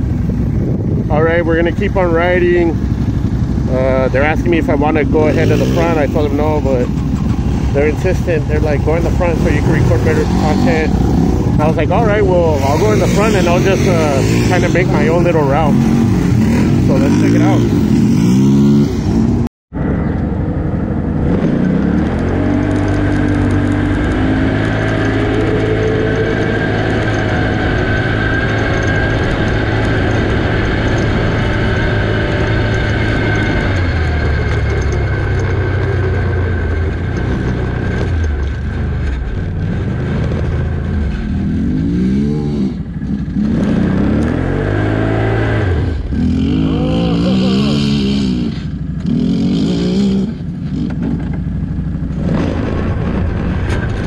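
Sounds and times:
atv engine revving: 0:00.0 - 0:54.0.

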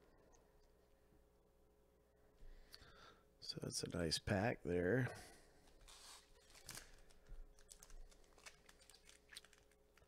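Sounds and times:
foil wrappers crinkling: 0:05.8 - 0:10.0.

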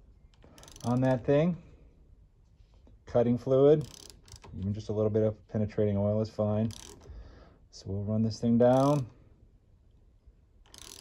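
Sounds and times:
thread tap turning in metal: 0:03.8 - 0:04.7, 0:06.7 - 0:07.1, 0:08.7 - 0:09.2, 0:10.6 - 0:11.0.

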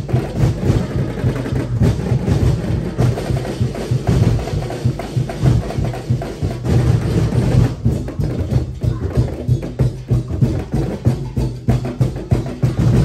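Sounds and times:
drum ensemble playing fast rhythm: 0:00.0 - 0:13.0.

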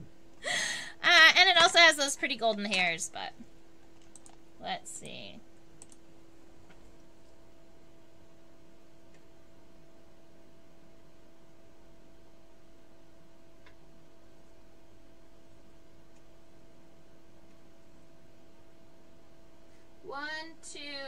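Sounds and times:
steady low hum: 0:00.0 - 0:21.0
faint clicks: 0:03.9 - 0:04.4, 0:05.8 - 0:06.0.

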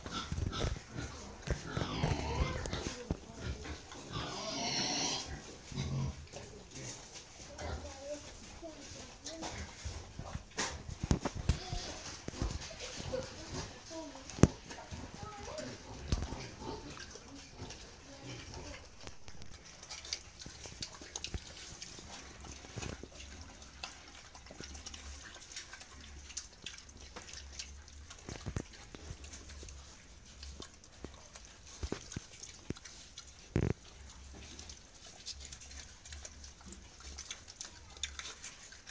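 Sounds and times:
pig chewing watermelon rinds: 0:00.0 - 0:38.9.

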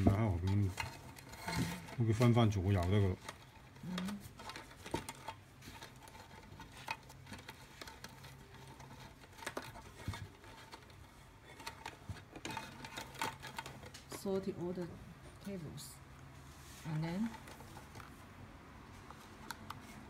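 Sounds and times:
soft rustling: 0:00.0 - 0:20.0.

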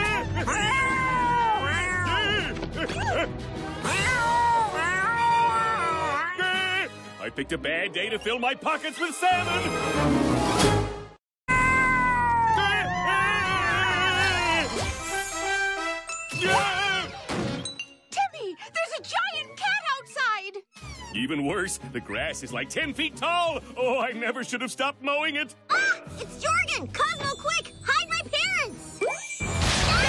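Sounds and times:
cartoon cat yowling: 0:00.0 - 0:03.2, 0:03.8 - 0:06.7, 0:11.5 - 0:14.8
background music: 0:00.0 - 0:30.0
wavering warbling cry: 0:11.7 - 0:14.7.

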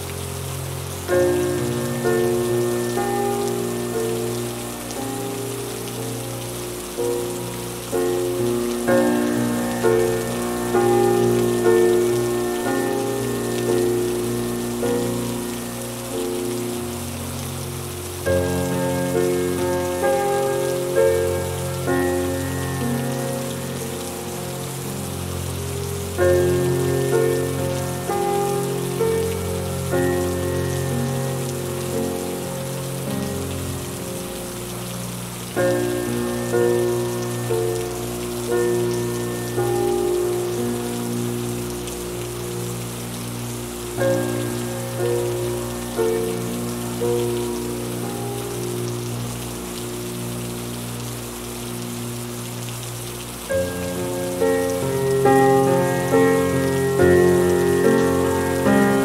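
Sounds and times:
slow calm piano piece: 0:00.0 - 0:59.0
steady rainfall: 0:00.0 - 0:59.0.

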